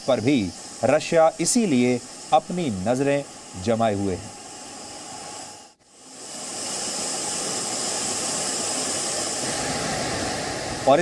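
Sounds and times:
jet aircraft rushing noise: 0:00.0 - 0:11.0.

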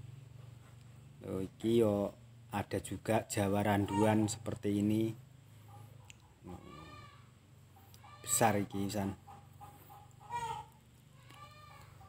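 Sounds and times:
faint farm animal calls: 0:03.0 - 0:12.0.

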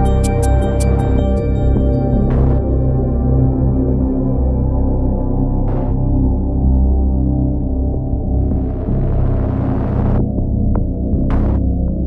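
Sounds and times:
dark synthesizer drone: 0:00.0 - 0:12.0.

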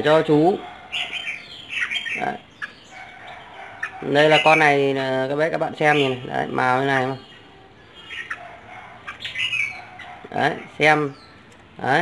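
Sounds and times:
bird giving harsh calls: 0:00.0 - 0:12.0.

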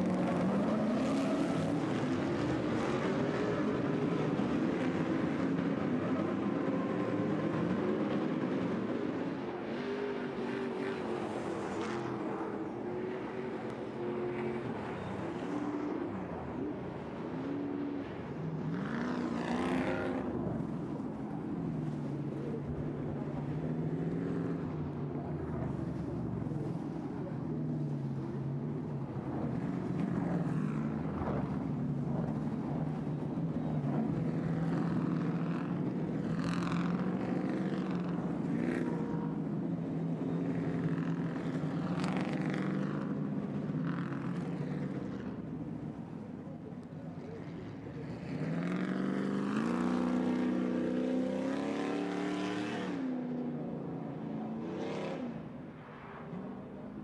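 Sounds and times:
race truck engines revving: 0:00.0 - 0:55.6.

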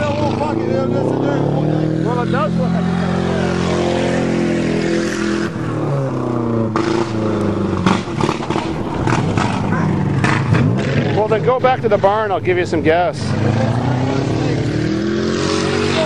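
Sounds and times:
car engine running: 0:00.0 - 0:14.8.

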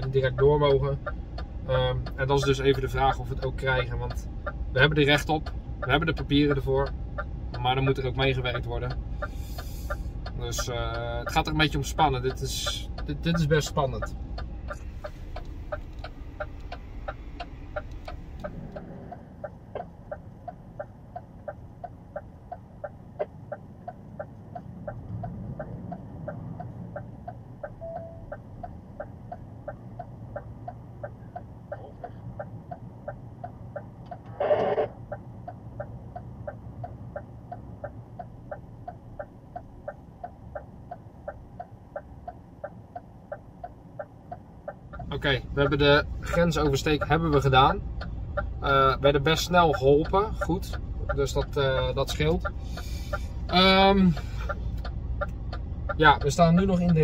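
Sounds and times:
indicator relay ticking: 0:00.0 - 0:34.3, 0:34.9 - 0:57.0
truck engine idling: 0:00.0 - 0:57.0.

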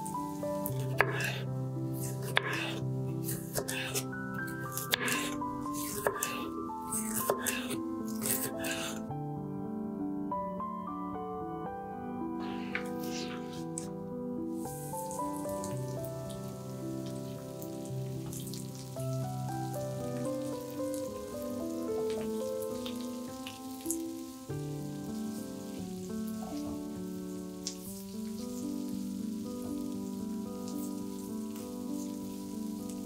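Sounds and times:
vegetables sizzling in a frying pan: 0:00.0 - 0:08.8, 0:14.5 - 0:33.0
background music with held notes: 0:00.0 - 0:33.0
spatula stirring: 0:00.6 - 0:01.4, 0:02.0 - 0:09.0.

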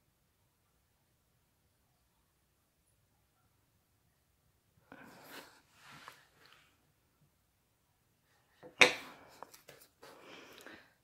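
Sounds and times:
objects handled on glass table: 0:08.5 - 0:10.7.

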